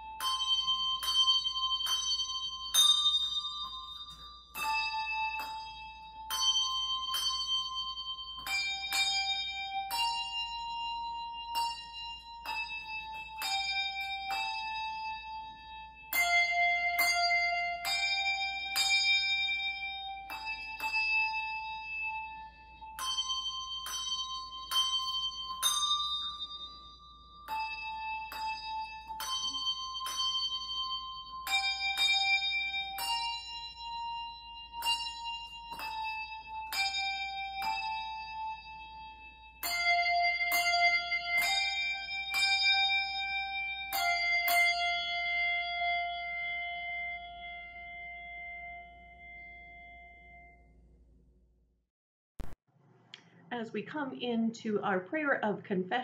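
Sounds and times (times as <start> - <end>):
handbells ringing a melody: 0.0 - 50.6.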